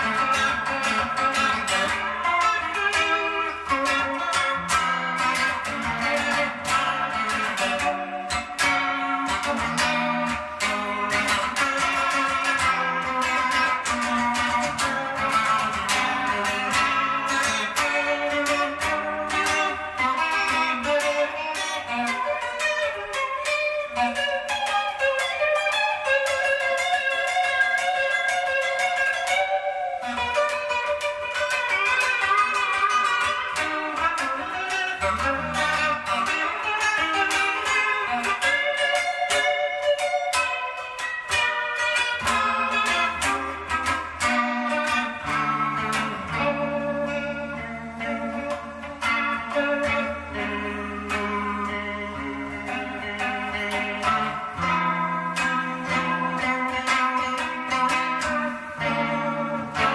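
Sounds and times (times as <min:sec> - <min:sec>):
electric guitar picked notes and chords: 0:00.0 - 0:59.9.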